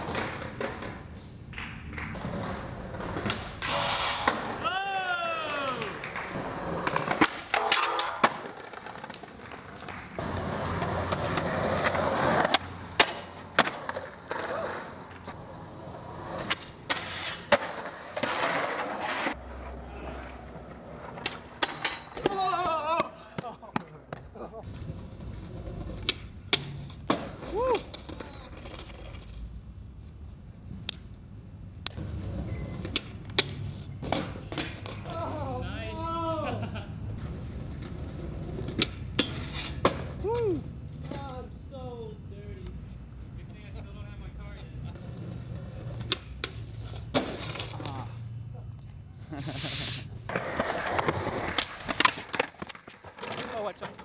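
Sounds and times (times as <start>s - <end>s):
skateboards slapping and clattering: 0.0s - 4.7s, 5.4s - 29.4s, 32.0s - 35.4s, 44.9s - 48.2s, 50.2s - 54.0s
skateboard wheels rolling: 0.0s - 41.5s, 44.8s - 54.0s
people shouting: 4.6s - 6.0s, 22.2s - 23.3s.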